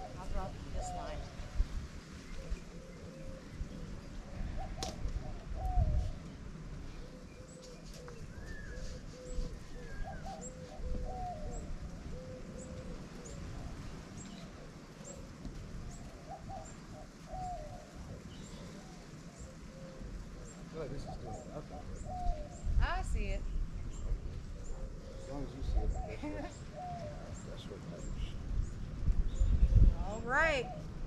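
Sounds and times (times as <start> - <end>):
doves cooing: 0.0 - 22.8, 23.8 - 31.0
wind rumble on microphone: 0.0 - 31.0.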